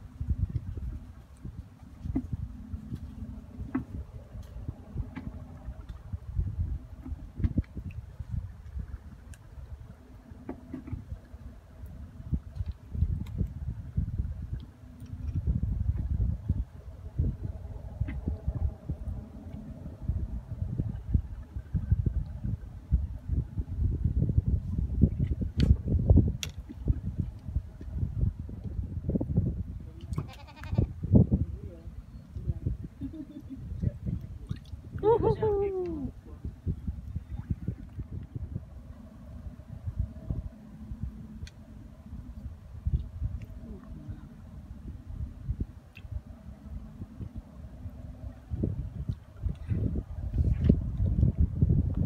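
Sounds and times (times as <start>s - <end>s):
low uneven rumbling: 0.0s - 52.0s
wind buffeting microphone: 0.0s - 52.0s
bleat-like animal call: 30.2s - 30.9s.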